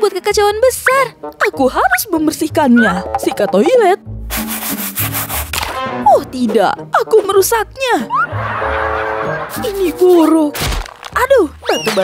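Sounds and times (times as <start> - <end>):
toilet brush scrubbing bowl: 4.3 - 5.5.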